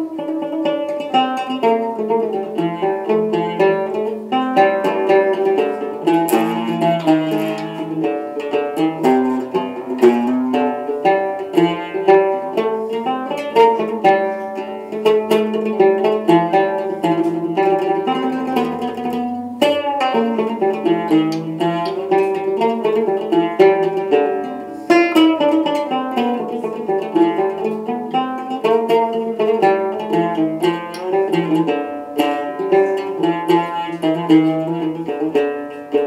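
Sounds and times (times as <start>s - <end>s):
plucked fretless lute melody: 0.0s - 36.0s.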